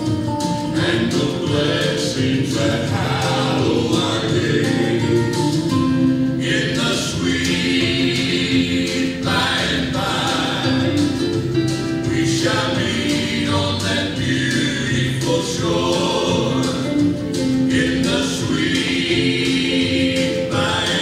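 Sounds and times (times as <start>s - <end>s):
instrumental accompaniment: 0.0s - 21.0s
choir singing a hymn: 0.6s - 21.0s.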